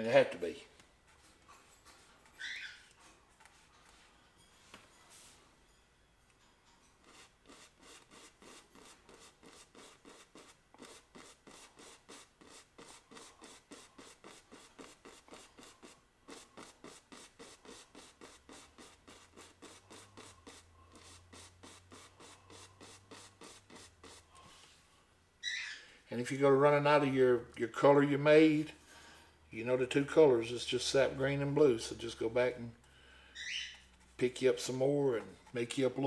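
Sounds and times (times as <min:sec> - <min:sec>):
paintbrush strokes on canvas: 0:03.0 - 0:05.5, 0:07.0 - 0:25.0, 0:33.8 - 0:36.0.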